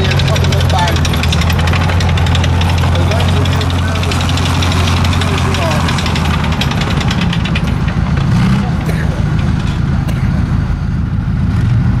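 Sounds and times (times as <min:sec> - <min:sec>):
rapid even clatter: 0:00.0 - 0:10.6
tank diesel engine running: 0:00.0 - 0:12.0.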